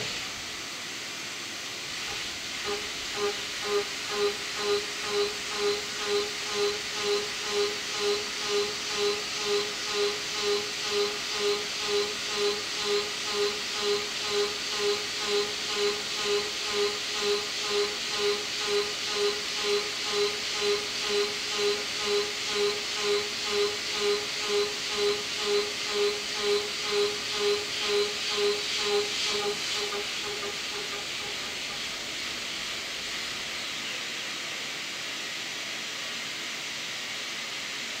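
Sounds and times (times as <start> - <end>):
steady machine hiss: 0.0 - 38.0
high milling cutting tone: 2.1 - 32.7.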